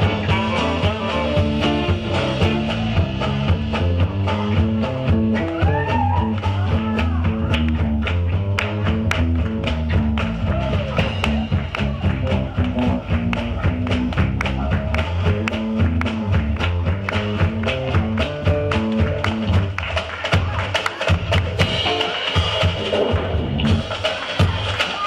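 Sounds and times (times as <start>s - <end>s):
electric bass line: 0.0s - 20.6s, 21.3s - 24.5s
drum kit beat: 0.0s - 25.0s
live band playing: 0.0s - 25.0s.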